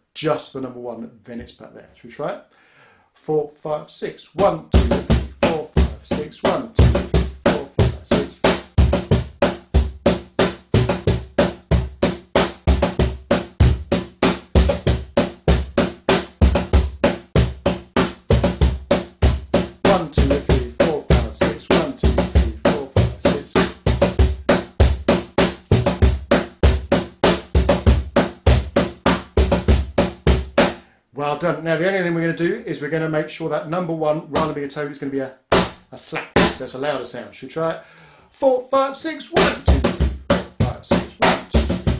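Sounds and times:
cajon played with bare hands: 4.8s - 30.7s, 39.4s - 41.9s.

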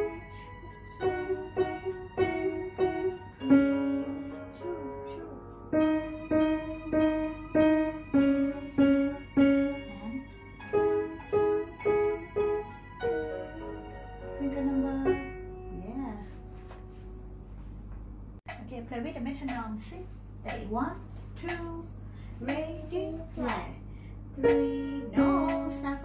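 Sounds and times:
simple piano melody: 0.0s - 17.6s, 24.4s - 26.0s.

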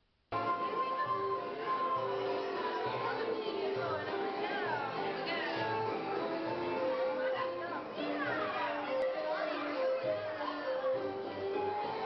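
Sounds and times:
carousel music: 0.3s - 12.0s
children chattering and calling: 0.4s - 12.0s.

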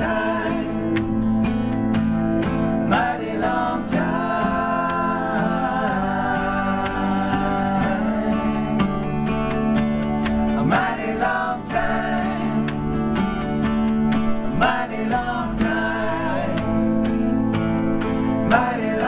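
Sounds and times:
men singing in harmony: 0.0s - 1.7s, 2.5s - 9.8s, 10.4s - 13.7s, 14.4s - 19.0s
strummed acoustic guitars: 0.0s - 19.0s.

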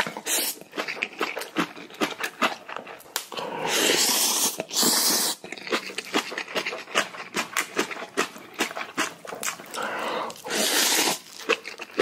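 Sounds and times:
slurping noodles: 0.0s - 1.4s, 3.3s - 12.0s.

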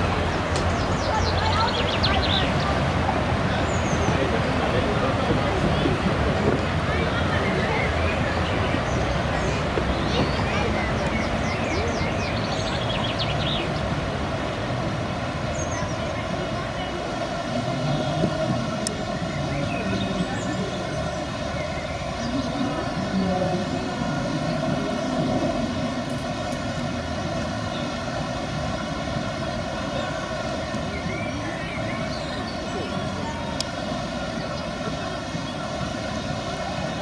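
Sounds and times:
rushing whitewater: 0.0s - 37.0s
steady droning hum: 0.0s - 37.0s.

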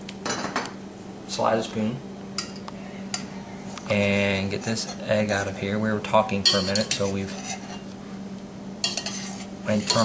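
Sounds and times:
steady low hum: 0.0s - 10.0s
metal spoon clinking against pot: 6.4s - 7.1s, 8.8s - 10.0s.

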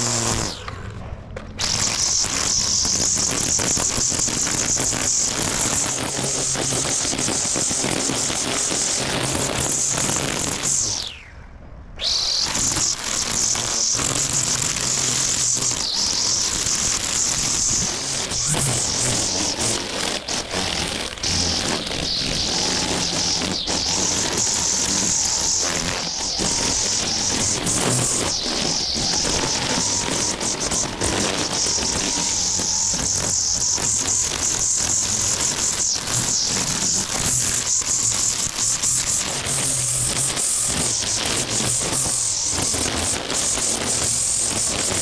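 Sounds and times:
string trimmer running: 0.0s - 11.1s, 12.0s - 45.0s.

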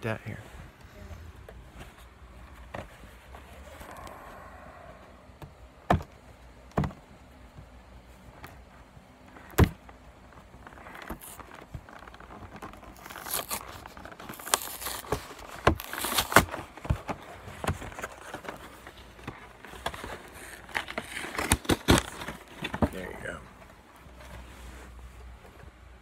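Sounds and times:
plastic wrapping crinkling and tearing: 10.5s - 22.8s.

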